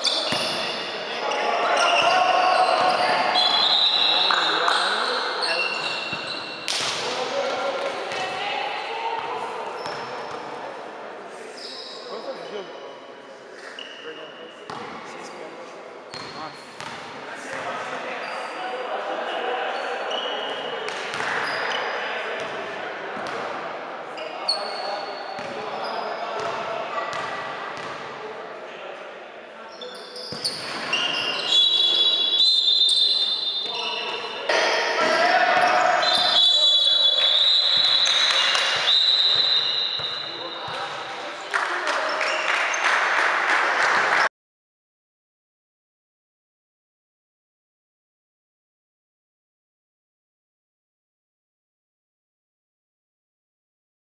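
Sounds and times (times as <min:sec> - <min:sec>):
voices echoing in hall: 0:00.0 - 0:44.3
basketball bouncing on court: 0:16.2 - 0:17.6, 0:26.4 - 0:28.1.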